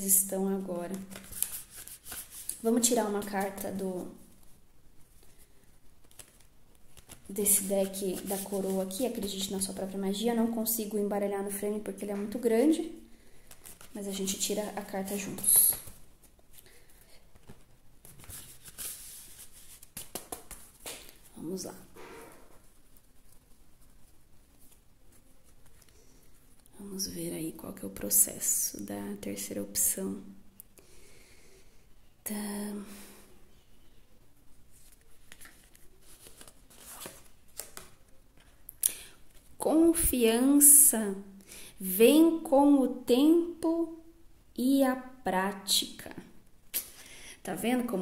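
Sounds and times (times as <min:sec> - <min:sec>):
card deck being shuffled: 0:00.9 - 0:03.6, 0:06.0 - 0:09.6, 0:17.4 - 0:21.3, 0:34.8 - 0:38.0.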